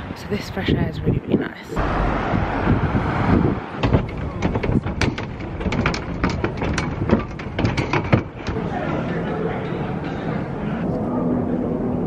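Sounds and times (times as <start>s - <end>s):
traffic rumble: 0.0s - 12.0s
wind: 0.0s - 12.0s.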